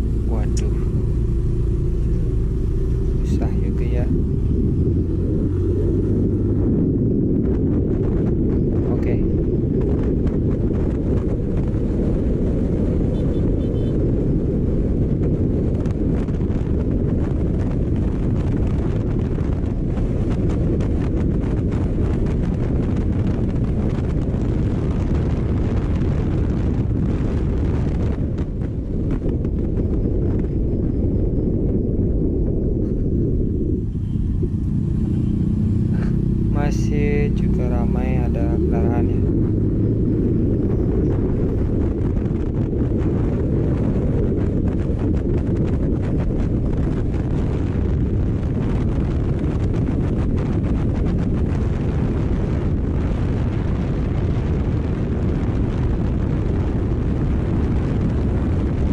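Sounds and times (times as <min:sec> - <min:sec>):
wind buffeting microphone: 0:00.0 - 0:58.9.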